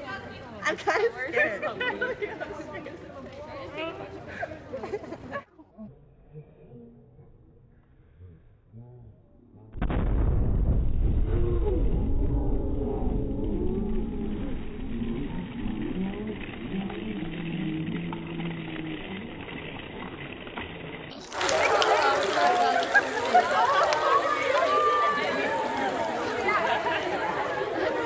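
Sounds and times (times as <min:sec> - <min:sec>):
people talking and shouting: 0:21.1 - 0:28.0.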